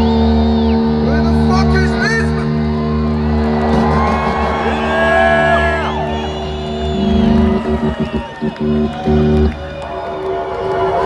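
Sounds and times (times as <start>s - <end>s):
electronic drone over loudspeakers: 0.0s - 11.0s
crowd whooping and shouting: 2.4s - 11.0s.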